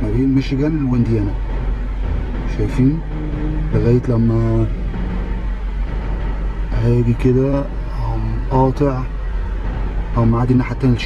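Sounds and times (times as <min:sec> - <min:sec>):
man talking: 0:00.0 - 0:01.4, 0:02.5 - 0:03.1, 0:03.7 - 0:04.7, 0:06.7 - 0:09.1, 0:10.2 - 0:11.0
car cabin low rumble: 0:00.0 - 0:11.0.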